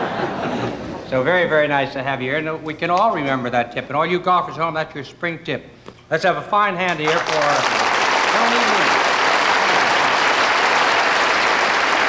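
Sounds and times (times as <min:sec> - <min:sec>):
audience applauding: 0:06.9 - 0:12.0.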